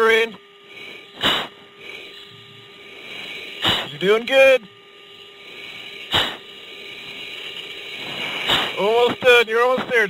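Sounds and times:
low steady cockpit hum: 0.0 - 10.0
sharp forced breath: 0.6 - 4.0.

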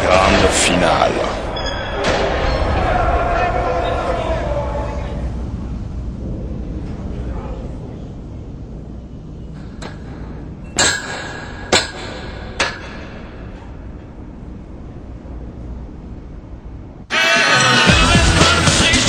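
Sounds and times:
steady low rumble: 0.0 - 17.1
sharp metallic clanks: 9.5 - 14.5.

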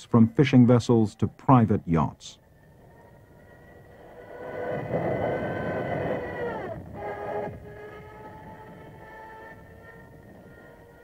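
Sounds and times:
aircraft engine passing: 0.0 - 11.0
droning background score: 0.0 - 11.0.

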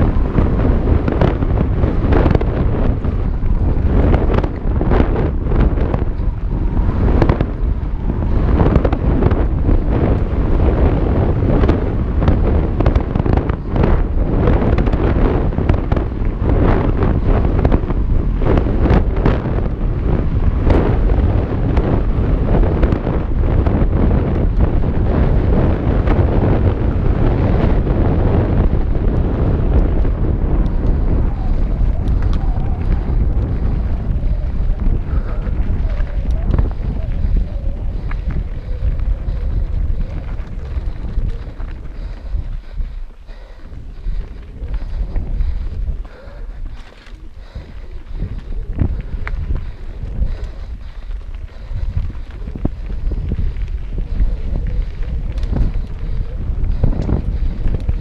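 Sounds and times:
bike knocking and rattling: 0.0 - 58.0
tyres on loose dirt: 0.0 - 58.0
wind rushing over microphone: 0.0 - 58.0.

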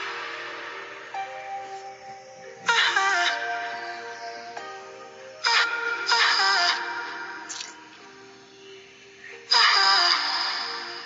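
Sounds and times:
person singing: 0.0 - 11.0
r and b song: 0.0 - 11.0.

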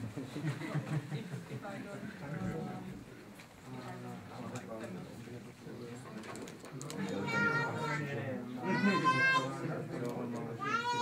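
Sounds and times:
low background murmur: 0.0 - 11.0.

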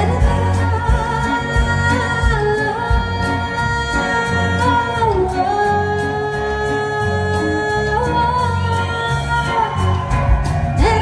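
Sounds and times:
live band music through speakers: 0.0 - 11.0.

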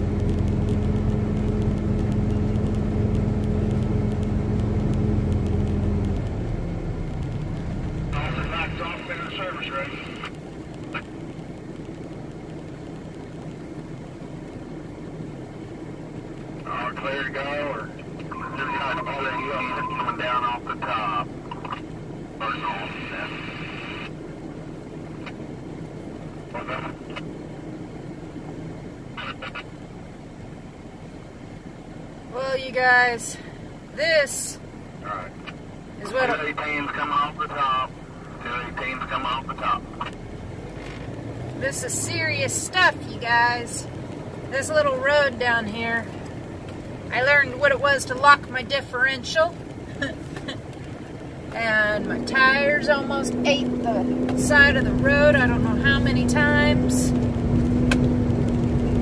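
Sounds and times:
diesel truck engine running: 0.0 - 59.0
voice talking: 8.1 - 10.3, 16.6 - 21.3, 36.0 - 40.1, 51.5 - 57.1.

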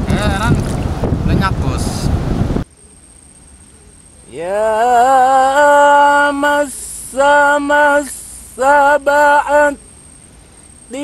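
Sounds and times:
wind buffeting microphone: 0.0 - 2.6
low hiss: 0.0 - 11.0.

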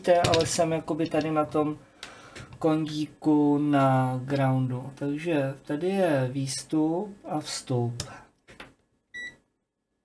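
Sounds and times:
multimeter beep: 9.1 - 9.4.

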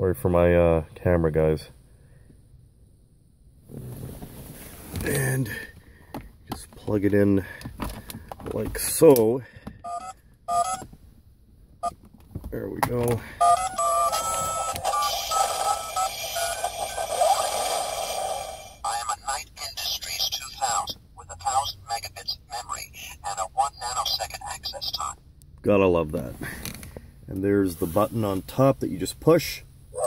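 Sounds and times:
short electronic beeps: 13.4 - 17.1
hissing electronic wash: 15.0 - 18.8.

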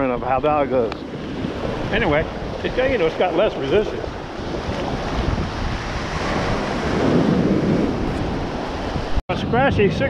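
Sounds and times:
wind buffeting microphone: 0.0 - 10.0
shallow surf washing over sand: 0.3 - 9.2.

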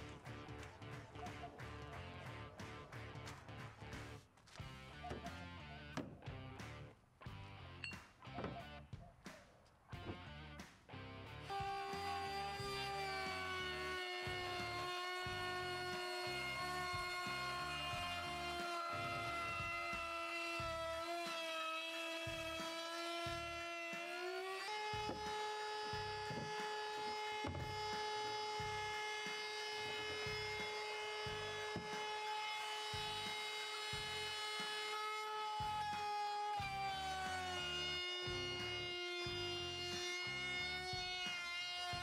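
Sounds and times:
power tool motor whining: 11.4 - 42.0.

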